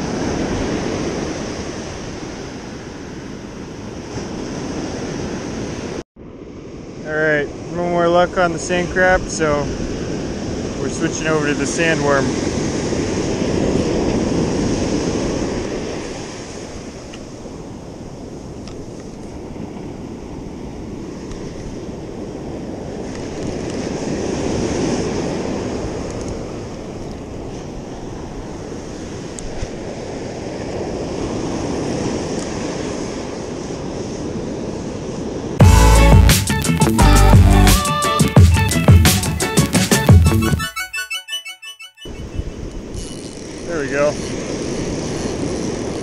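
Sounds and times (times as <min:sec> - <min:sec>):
ocean surf breaking: 0:00.0 - 0:40.8, 0:42.0 - 0:46.0.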